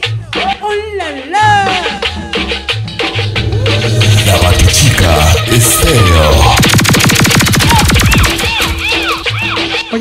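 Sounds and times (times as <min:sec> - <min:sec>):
cumbia music: 0:00.0 - 0:10.0
rapid electronic pulses: 0:03.2 - 0:09.0.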